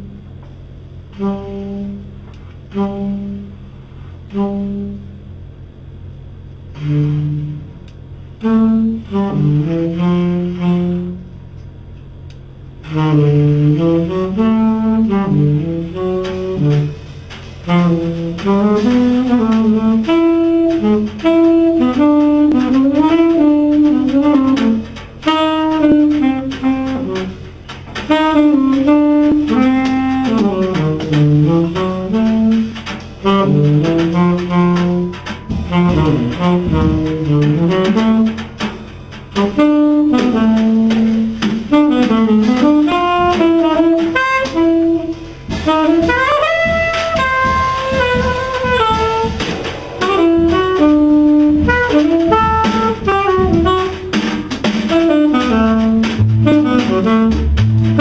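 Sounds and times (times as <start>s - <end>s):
bass: 0.0s - 58.0s
drums: 0.0s - 58.0s
tenor saxophone jazz solo: 1.1s - 5.3s, 6.7s - 11.4s, 12.3s - 58.0s.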